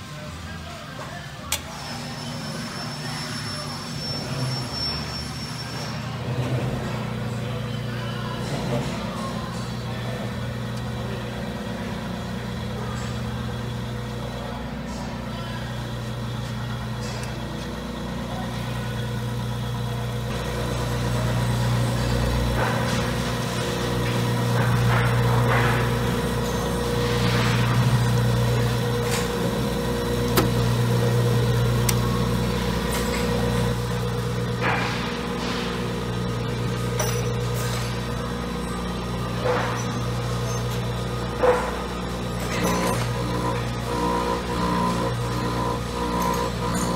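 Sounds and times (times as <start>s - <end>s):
grinder motor humming: 1.5s - 46.9s.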